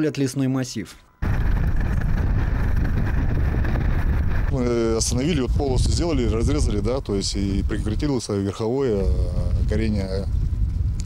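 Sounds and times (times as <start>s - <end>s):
wind buffeting microphone: 1.2s - 11.0s.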